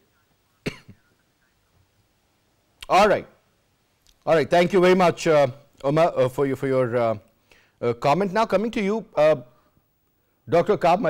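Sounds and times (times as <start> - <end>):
short cough: 0.6 - 1.1.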